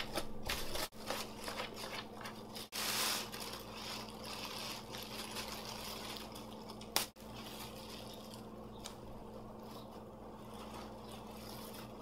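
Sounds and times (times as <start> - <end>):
plastic bag crinkling: 0.1 - 12.0.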